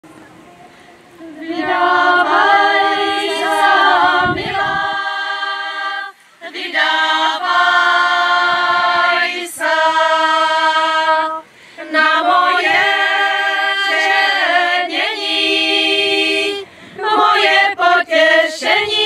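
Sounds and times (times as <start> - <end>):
singers breathing: 0.6 - 1.2, 6.1 - 6.4, 11.4 - 11.9, 16.6 - 17.0
women's choir singing: 1.2 - 19.0.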